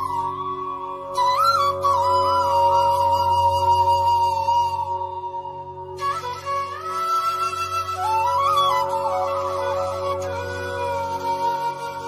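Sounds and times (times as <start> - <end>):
flute melody: 0.0 - 12.0.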